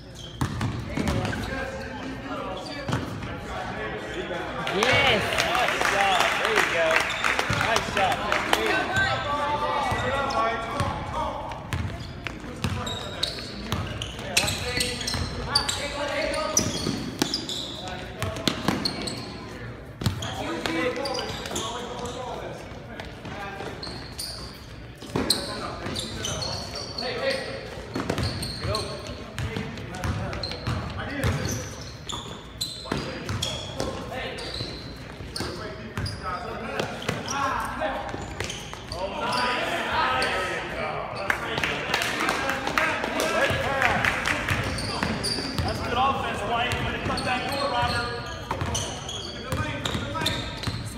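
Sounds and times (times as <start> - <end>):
voices calling out in hall: 0.0 - 50.9.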